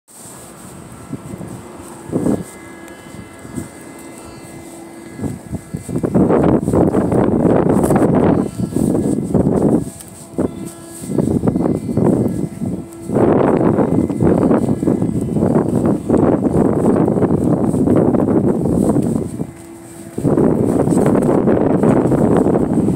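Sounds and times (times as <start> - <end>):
wind buffeting microphone: 0.2 - 22.9.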